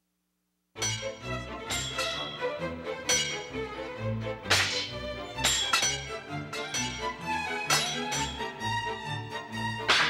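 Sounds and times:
sharp percussive hits: 0.8 - 3.8, 4.4 - 8.6
orchestral strings: 0.8 - 10.0.

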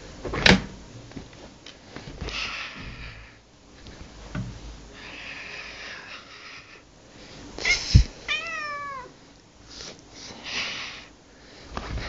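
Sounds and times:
cat meowing: 8.3 - 9.1.

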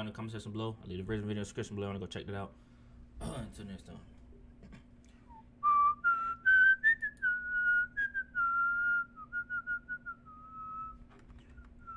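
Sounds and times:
person whistling a tune: 5.3 - 11.9.

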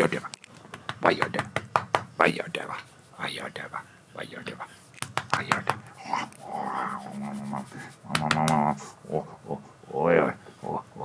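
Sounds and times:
man whispering and cooing: 5.9 - 11.0.

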